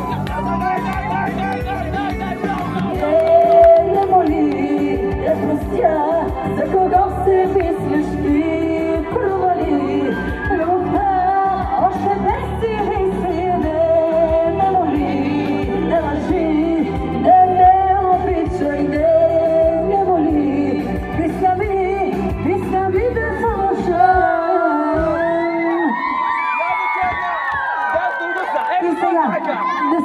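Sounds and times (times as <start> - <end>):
crowd shouting: 0.0 - 3.0, 25.5 - 30.0
amplified backing music: 0.0 - 25.6
woman singing into microphone: 2.9 - 26.1.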